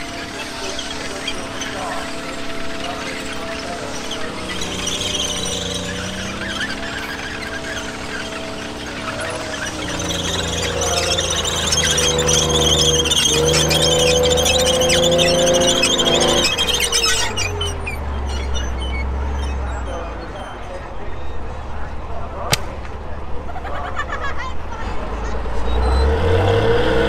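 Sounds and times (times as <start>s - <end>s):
steel tracks squealing: 0.0s - 22.0s
tank engine revving: 0.0s - 27.0s.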